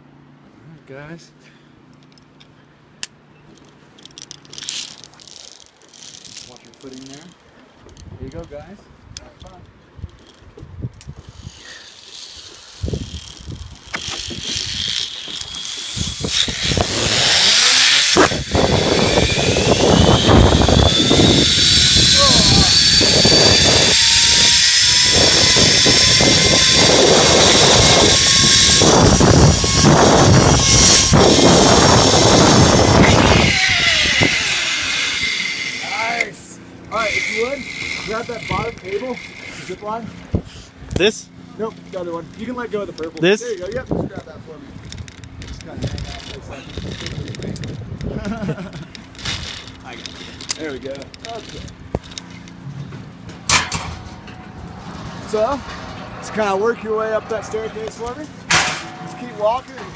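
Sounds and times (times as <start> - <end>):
zipline pulley whine: 3.6 - 7.4, 11.0 - 40.2, 40.9 - 53.0
wind rushing over microphone: 12.8 - 14.9, 15.9 - 35.2, 43.5 - 49.6.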